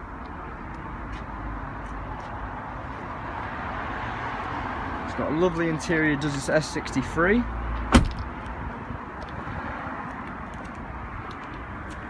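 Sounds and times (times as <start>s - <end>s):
open-air background noise: 0.0s - 12.0s
car door thudding shut: 7.8s - 8.3s.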